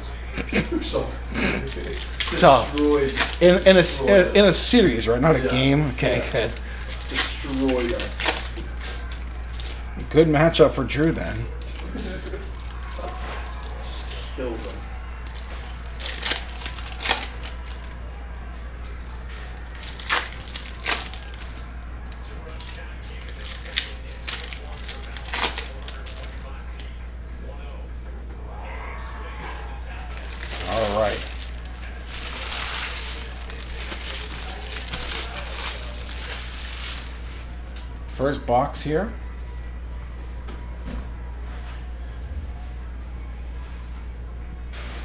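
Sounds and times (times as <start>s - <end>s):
steady low hum: 0.0s - 44.7s
wrappers crinkling and tearing: 0.4s - 26.9s, 29.9s - 37.8s.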